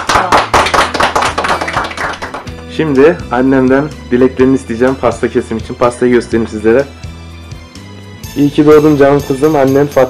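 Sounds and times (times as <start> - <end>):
people applauding: 0.0 - 2.6.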